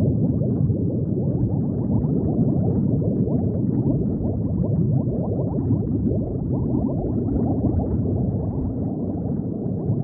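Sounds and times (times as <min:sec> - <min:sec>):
underwater bubbling: 0:00.0 - 0:10.0.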